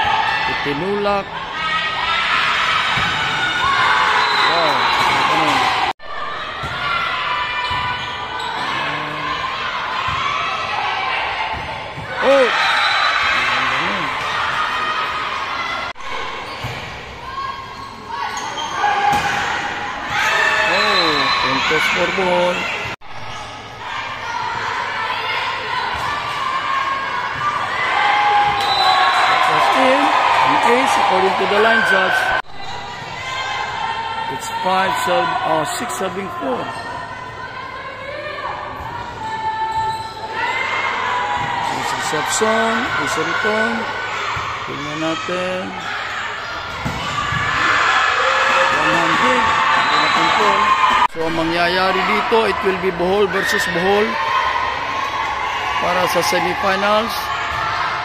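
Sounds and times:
people shouting and cheering: 0:00.0 - 0:58.0.

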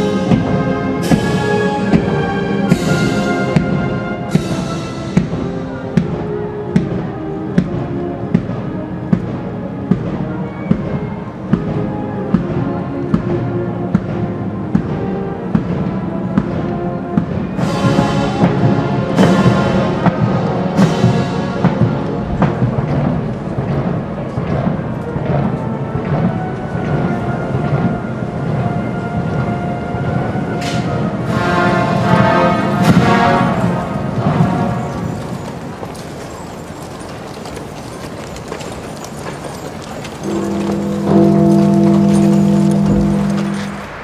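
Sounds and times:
brass chords: 0:00.0 - 0:10.4, 0:11.2 - 0:35.4, 0:40.2 - 0:44.0
muffled drum beats: 0:00.0 - 0:30.3, 0:31.2 - 0:35.0, 0:40.3 - 0:44.0
military band funeral march: 0:00.0 - 0:44.0.

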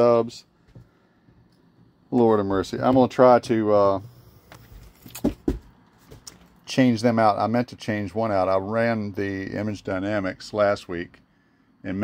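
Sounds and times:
footsteps on wooden floor: 0:04.6 - 0:06.3.

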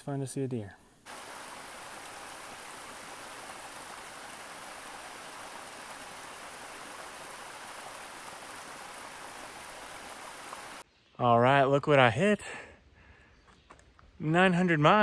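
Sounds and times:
creek trickling over rocks: 0:01.0 - 0:10.8.

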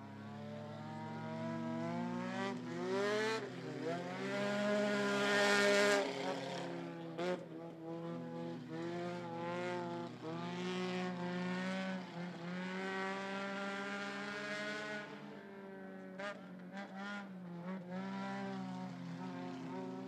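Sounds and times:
racing car engines revving: 0:00.0 - 0:20.0.

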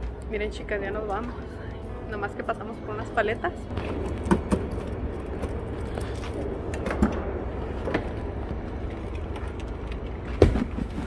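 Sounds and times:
parking garage low rumble: 0:00.0 - 0:11.0.

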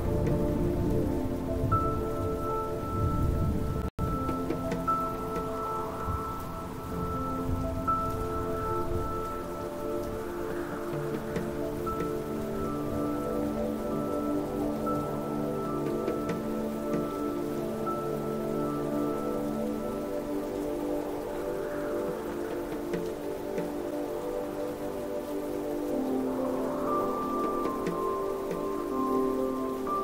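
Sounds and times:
ambient music with held chords: 0:00.0 - 0:30.0
rain-like patter: 0:00.0 - 0:30.0.

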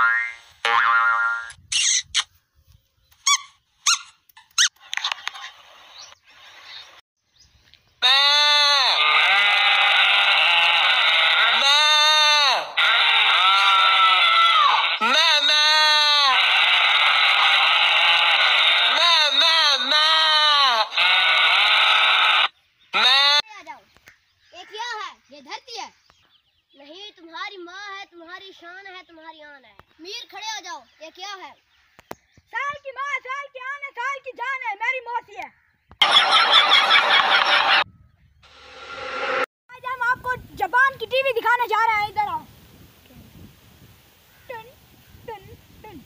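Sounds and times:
cartoon boing: 0:00.0 - 0:01.6
pitch-bending sound effect: 0:38.4 - 0:39.5.

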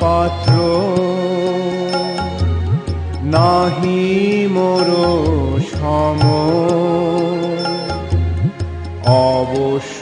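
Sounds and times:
wavering devotional melody: 0:00.0 - 0:10.0.

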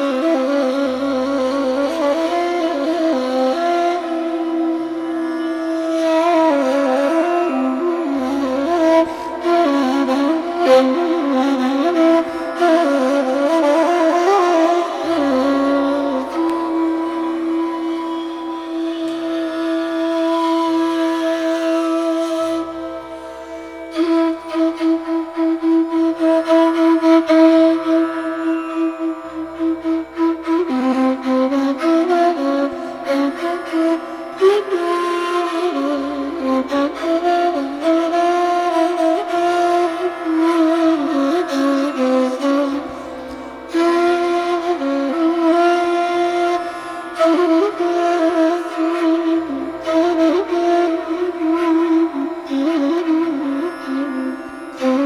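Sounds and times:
ney flute long notes: 0:00.0 - 0:55.0
soft tanpura drone: 0:00.0 - 0:55.0.

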